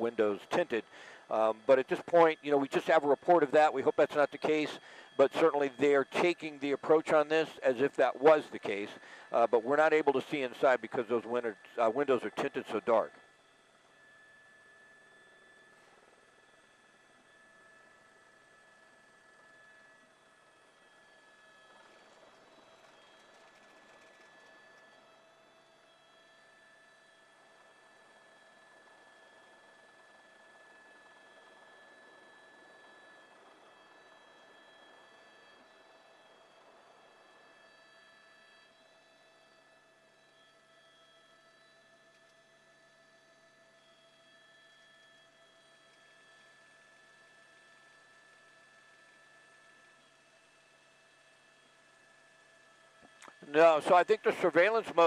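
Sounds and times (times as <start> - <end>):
faint steady tones: 0.0 - 55.0.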